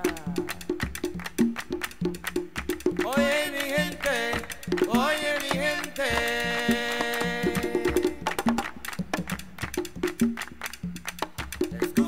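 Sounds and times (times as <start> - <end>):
latin percussion drums: 0.0 - 12.0
sharp clicking strokes: 0.0 - 12.0
singing: 3.0 - 8.5.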